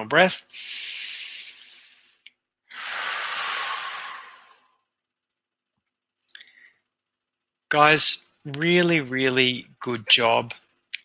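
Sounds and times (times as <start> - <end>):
man breathing into microphone: 0.5 - 4.1.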